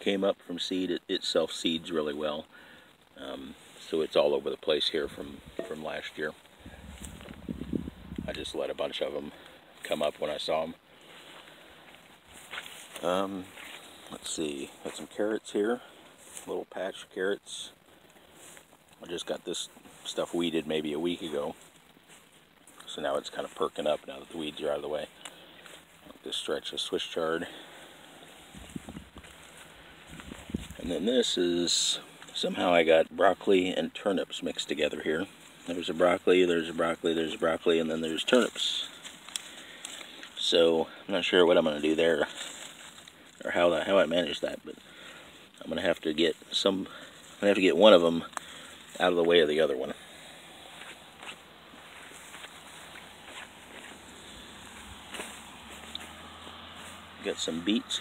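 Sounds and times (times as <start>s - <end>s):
footsteps on dry grass: 3.3s - 16.6s, 17.8s - 31.4s, 34.7s - 58.0s
soft low thumps of walking: 5.1s - 8.6s, 10.9s - 15.2s, 27.6s - 30.9s, 44.7s - 57.1s.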